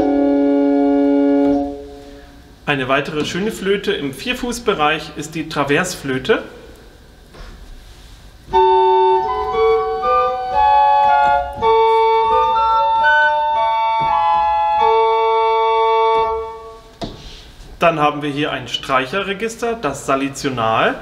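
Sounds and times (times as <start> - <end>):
pipe organ flute notes: 0.0 - 2.2, 8.5 - 16.9.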